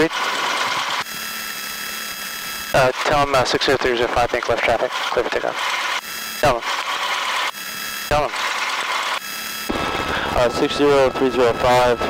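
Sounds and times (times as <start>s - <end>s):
thin high steady tones: 0.0s - 9.7s
radio static hissing: 0.0s - 11.9s
plane engine idling: 0.0s - 12.0s.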